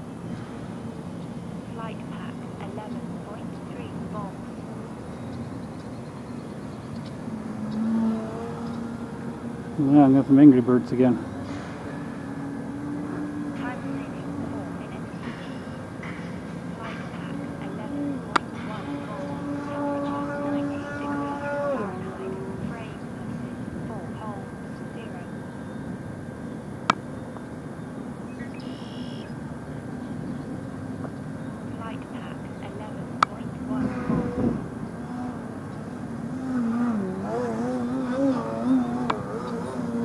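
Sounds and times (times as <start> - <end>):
model plane motor drone: 33.2 - 40.0.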